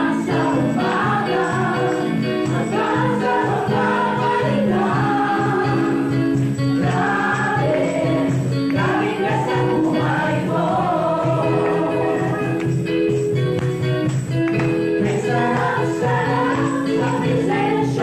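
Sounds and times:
gospel choir singing: 0.0 - 13.1, 14.7 - 18.0
accompaniment with steady beat: 0.0 - 18.0.

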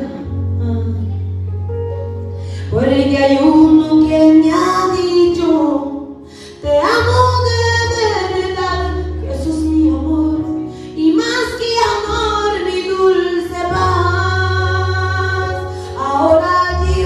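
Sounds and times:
woman singing through loudspeakers: 2.6 - 17.0.

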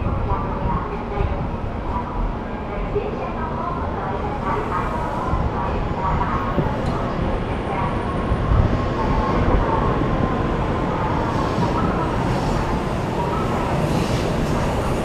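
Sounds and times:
train running along platform: 0.0 - 15.0.

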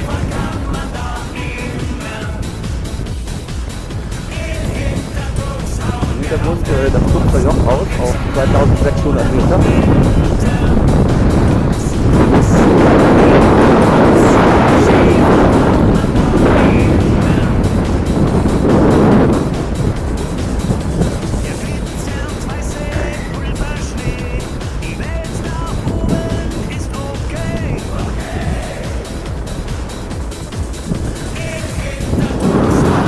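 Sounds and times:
wind on microphone: 0.0 - 33.0.

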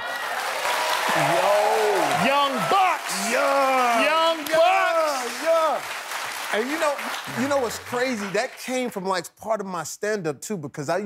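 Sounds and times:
audience applauding: 0.0 - 9.2.

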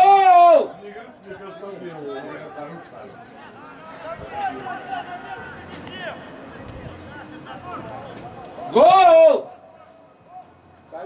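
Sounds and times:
distant players calling out: 0.0 - 11.0.

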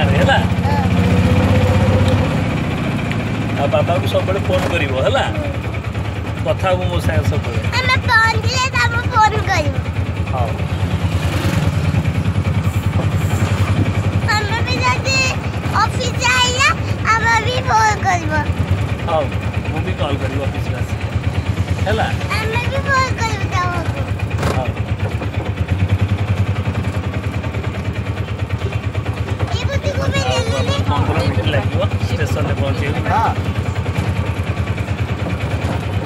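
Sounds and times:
vehicle engine rumbling: 0.0 - 36.0.

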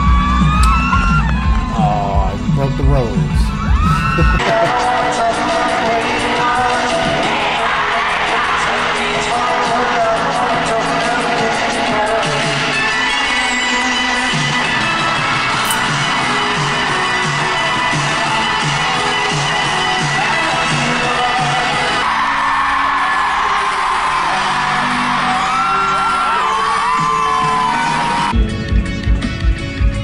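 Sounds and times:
crowd screaming and whooping: 0.0 - 2.3, 3.5 - 10.8, 12.3 - 28.4
crowd cheering: 0.0 - 2.4, 3.5 - 10.7, 12.2 - 28.4
pop band music: 0.0 - 30.0.

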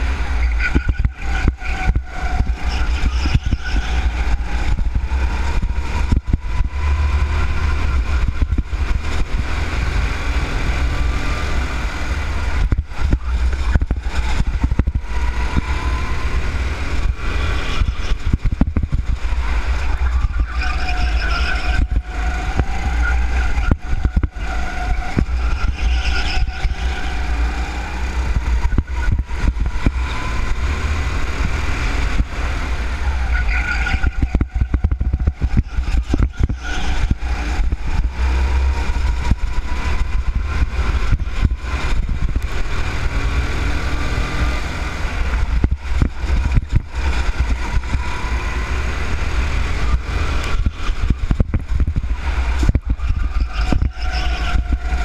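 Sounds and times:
go-kart engine running: 0.0 - 55.0
wind rumble on camera: 0.0 - 55.0.

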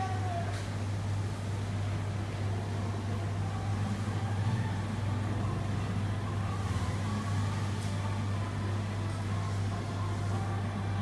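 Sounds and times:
noisy background haze: 0.0 - 11.0
steady low hum: 0.0 - 11.0.

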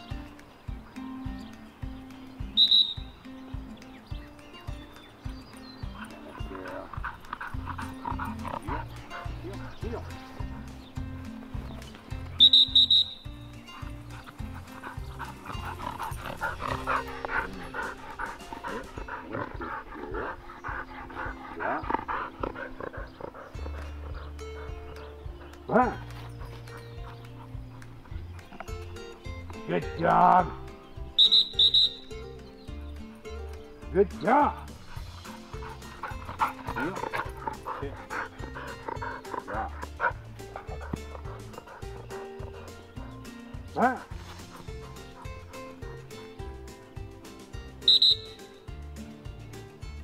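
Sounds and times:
music with steady beat: 0.0 - 6.2, 6.9 - 19.3, 34.6 - 50.0
high whistle blasts: 2.6 - 3.1, 12.4 - 13.3, 31.2 - 32.1, 47.9 - 48.5.

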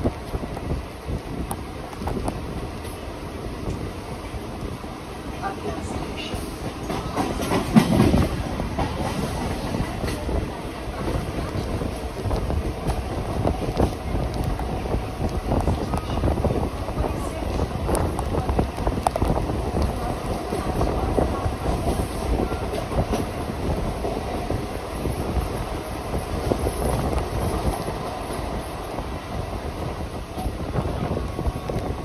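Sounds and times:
train rumble: 0.0 - 32.0.

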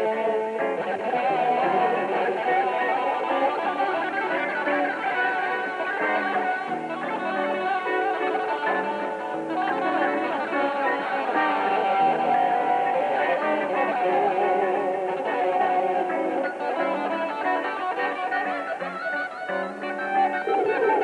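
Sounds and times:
electric guitar melody: 0.0 - 21.0.

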